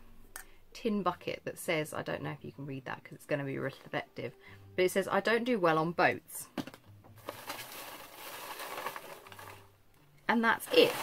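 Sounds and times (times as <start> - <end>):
paper filler rustling and crinkling: 7.2 - 9.7, 10.7 - 11.0.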